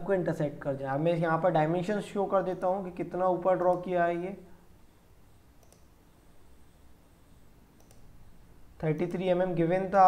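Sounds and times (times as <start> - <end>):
computer mouse clicks: 5.6 - 6.0, 7.8 - 8.1.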